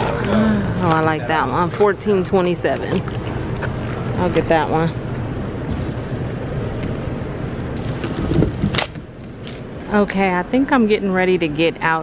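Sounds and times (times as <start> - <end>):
plastic bag rustling: 5.5 - 9.8.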